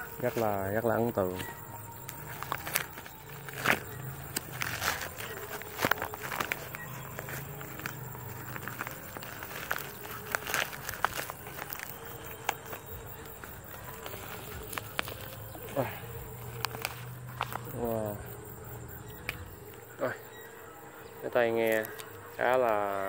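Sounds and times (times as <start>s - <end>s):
packaging bag crinkling: 0.0s - 18.2s, 21.6s - 22.3s.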